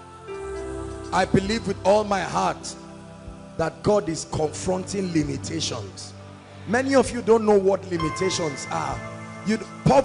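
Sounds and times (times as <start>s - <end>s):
man speaking into a microphone: 1.1s - 2.8s, 3.6s - 10.0s.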